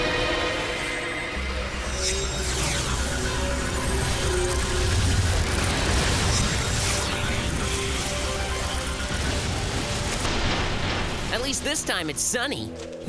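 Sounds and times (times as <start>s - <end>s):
rushing whirring sound effect: 0.4s - 10.2s.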